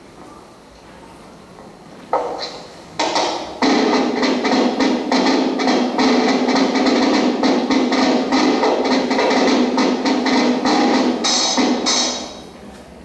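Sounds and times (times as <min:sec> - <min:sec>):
brisk percussive beat: 0:02.2 - 0:12.4.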